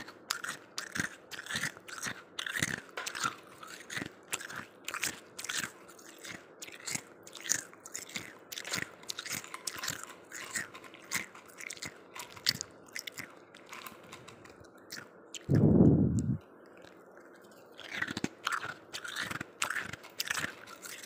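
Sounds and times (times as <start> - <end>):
person crunching ice: 17.8 - 21.0.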